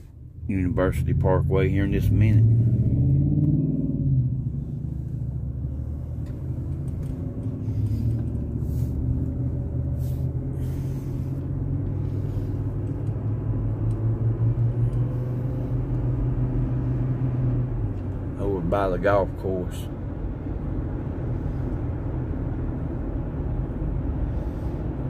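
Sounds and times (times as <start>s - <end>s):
car engine and road noise: 0.0s - 25.0s.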